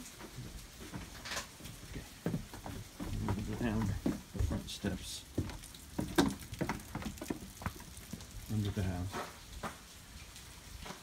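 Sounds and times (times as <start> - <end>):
footsteps on concrete: 0.0 - 10.0, 10.8 - 11.0.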